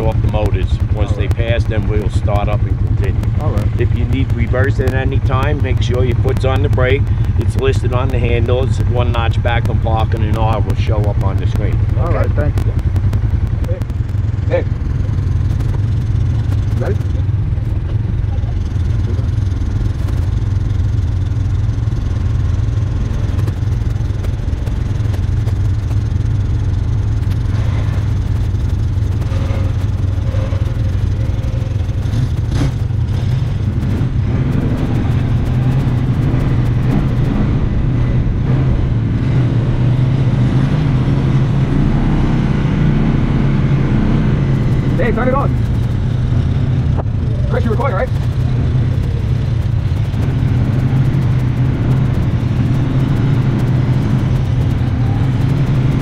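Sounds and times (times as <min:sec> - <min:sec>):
vehicle engine running: 0:00.0 - 0:56.0.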